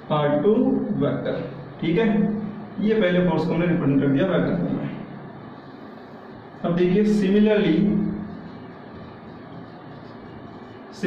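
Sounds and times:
man speaking: 0.0s - 5.1s, 6.6s - 8.4s
room hum: 0.0s - 11.0s.

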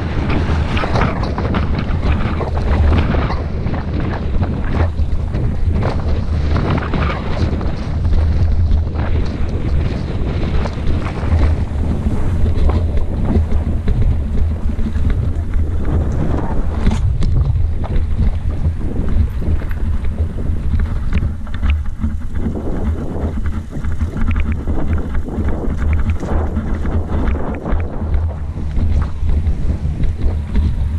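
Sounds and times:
bike rattling over bumps: 0.0s - 30.9s
wind buffeting microphone: 0.0s - 30.9s.

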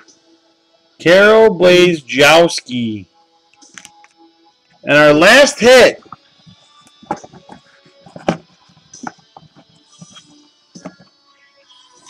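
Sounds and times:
cards and packaging rustling: 7.0s - 10.2s.

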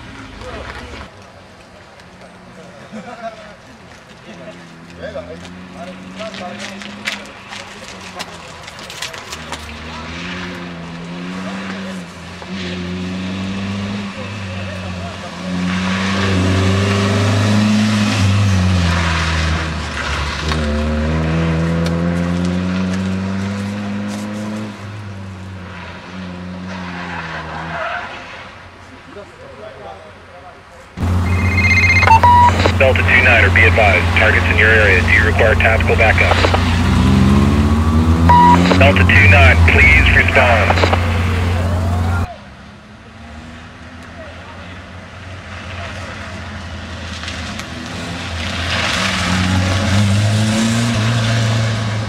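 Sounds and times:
car engine revving: 31.0s - 42.3s.

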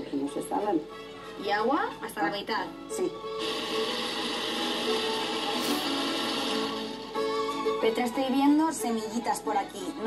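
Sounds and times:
blender running: 3.4s - 7.4s.

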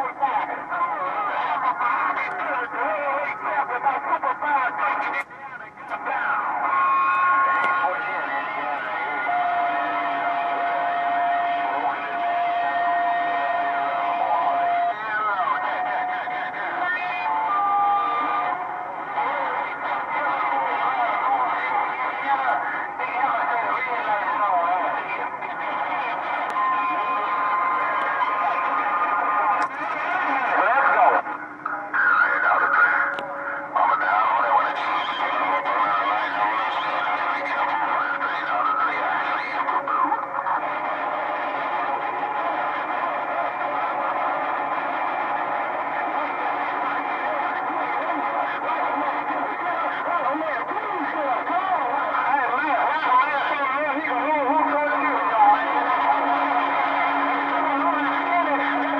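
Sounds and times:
garbled radio voices: 0.0s - 58.9s
wavering radio whistles: 4.0s - 58.9s.

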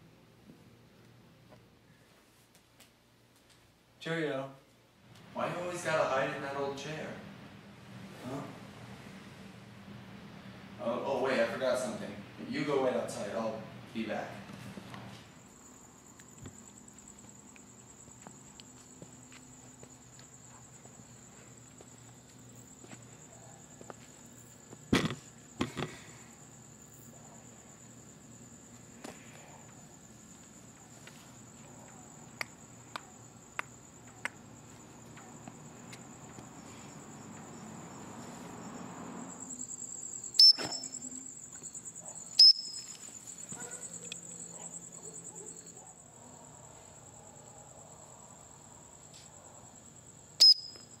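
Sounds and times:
crickets chirping: 3.0s - 51.0s.

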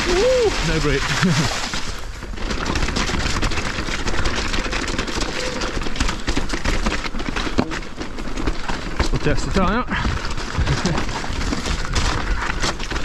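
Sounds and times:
bike rattling and knocking: 0.0s - 13.0s
tyres crunching over rocks: 0.0s - 13.0s.

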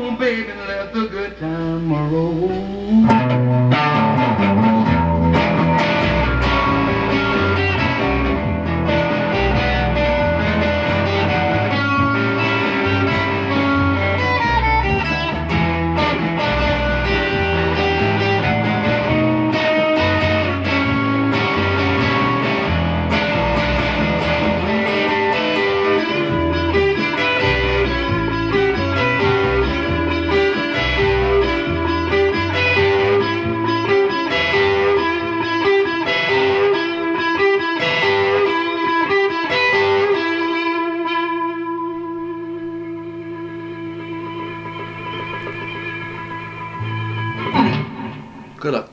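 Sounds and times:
bass guitar: 0.0s - 48.9s
drums: 1.3s - 40.5s, 42.7s - 48.8s
overdriven electric guitar lead: 1.4s - 48.9s
guitar chord ringing: 2.9s - 48.9s.

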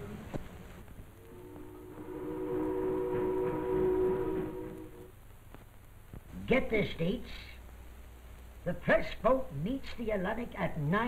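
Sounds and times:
ship's whistle chord: 1.2s - 5.1s.

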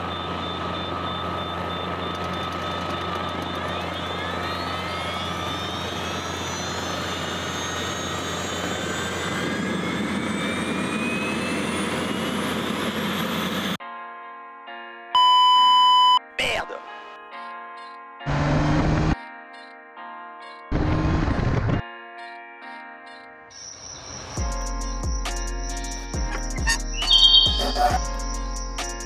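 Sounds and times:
musical jingle: 0.0s - 9.8s, 24.2s - 29.0s
gas turbine roar and whine: 0.0s - 13.8s.

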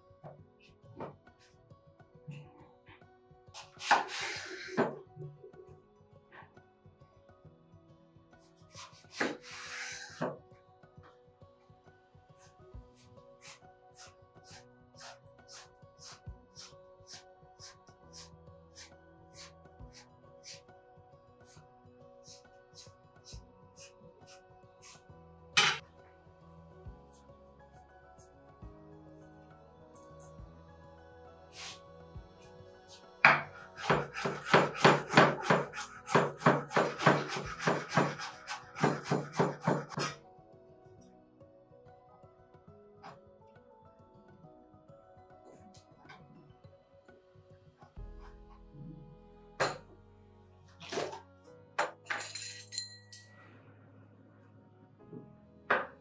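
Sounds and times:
knife slicing vegetable: 3.6s - 4.8s, 33.3s - 40.2s
knife scraping wooden board: 3.6s - 4.9s, 8.7s - 10.4s, 33.3s - 40.2s.

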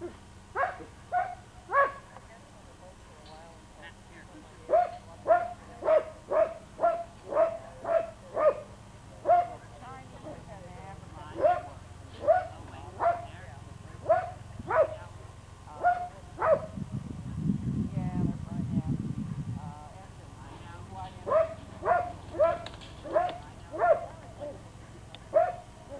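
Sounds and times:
dog barking: 0.6s - 2.1s, 4.7s - 9.6s, 11.4s - 13.4s, 14.0s - 15.0s, 15.8s - 16.8s, 21.2s - 24.7s, 25.3s - 25.7s
low rumble: 13.4s - 25.2s.

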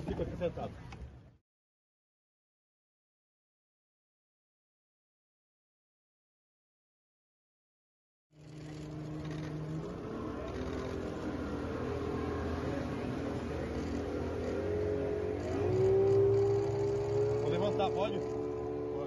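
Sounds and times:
boat engine running: 8.4s - 19.0s.

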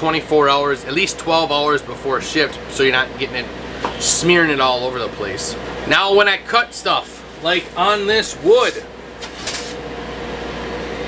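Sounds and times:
steady machine hum: 0.0s - 11.0s
wooden sheet scraping and rustling: 9.2s - 9.8s.

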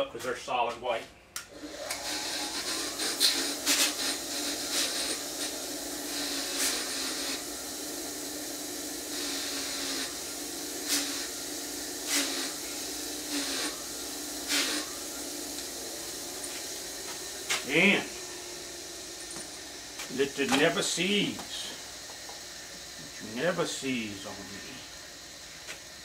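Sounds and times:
bench wire wheel humming: 1.4s - 26.0s.

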